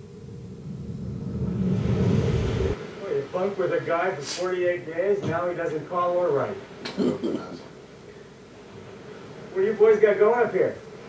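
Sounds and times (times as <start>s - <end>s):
low rumbling whoosh: 0.0s - 4.0s.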